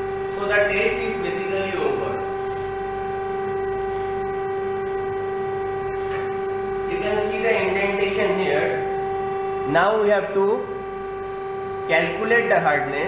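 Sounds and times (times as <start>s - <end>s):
testing machine humming: 0.0s - 13.0s.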